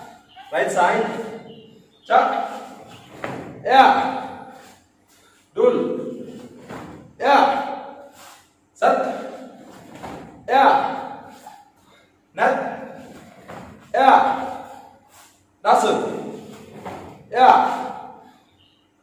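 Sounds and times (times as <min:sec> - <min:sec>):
man shouting in a large hall: 0:00.0 - 0:04.7, 0:05.5 - 0:08.2, 0:08.8 - 0:13.2, 0:13.8 - 0:15.0, 0:15.6 - 0:18.4.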